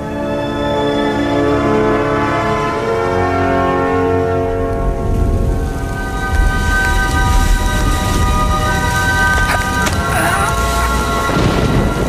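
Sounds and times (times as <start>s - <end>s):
music: 0.0s - 12.0s
heavy rain: 3.2s - 12.0s
low rumble of thunder: 10.8s - 12.0s.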